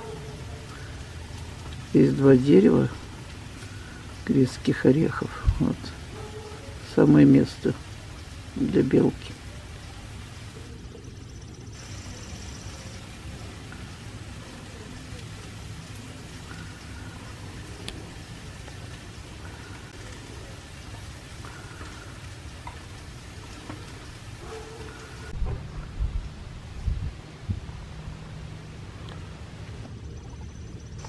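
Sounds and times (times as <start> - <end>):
steady hiss: 0.0 - 31.0
low rumble: 25.3 - 31.0.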